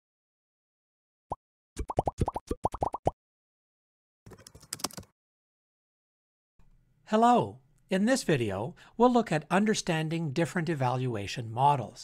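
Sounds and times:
bubbly pops rising in pitch: 1.8s - 3.2s.

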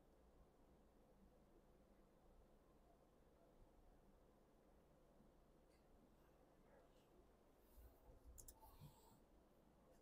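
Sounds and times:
faint clicks: 8.3s - 9.0s.

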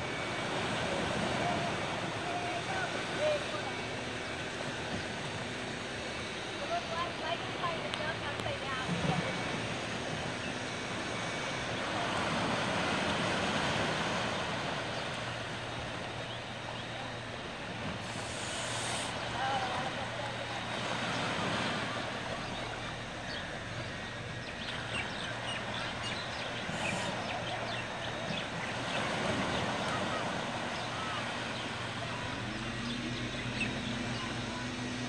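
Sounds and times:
small waves breaking on beach: 0.0s - 35.0s.

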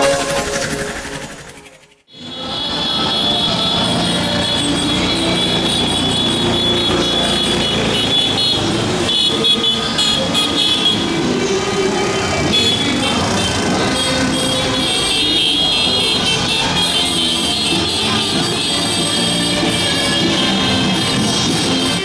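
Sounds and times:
music jingle: 0.0s - 2.1s
scooter and car engines passing: 0.0s - 22.0s.

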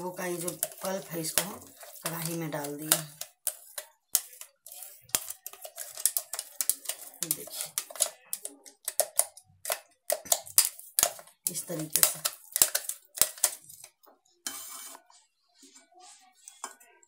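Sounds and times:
spoon scraping in steel jar: 0.0s - 13.9s.

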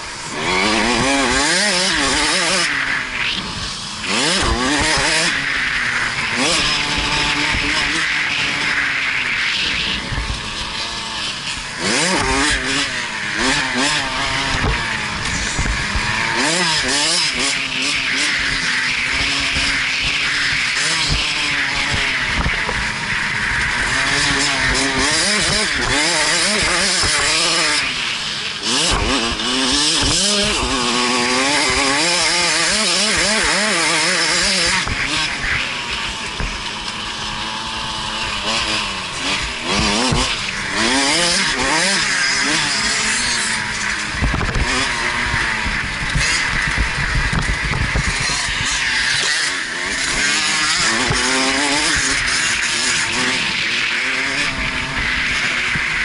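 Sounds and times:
dirt bike engine revving: 0.0s - 56.0s
wind noise on microphone: 44.2s - 48.6s.

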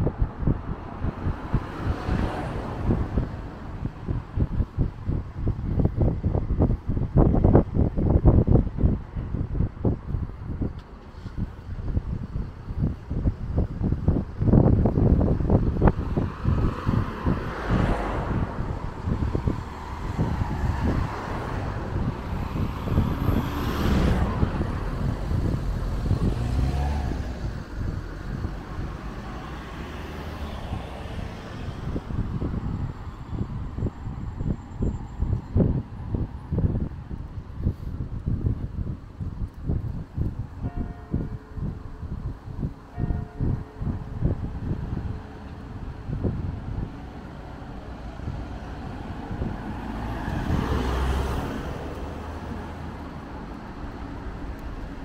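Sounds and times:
cars passing close by: 0.0s - 55.0s
wind buffeting the microphone: 0.0s - 55.0s.

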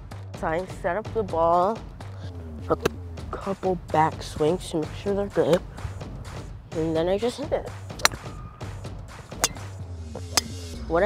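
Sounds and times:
background music: 0.0s - 11.0s
golf club striking ball: 7.9s - 8.4s, 9.1s - 10.7s.

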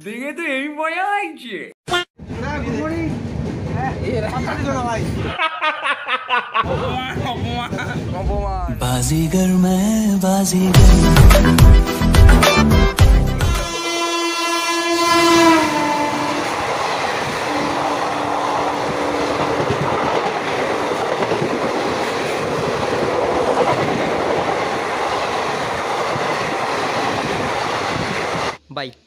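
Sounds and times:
train coaches rushing past: 2.2s - 5.4s, 6.7s - 9.2s, 13.6s - 28.6s
train horn: 13.4s - 19.8s.

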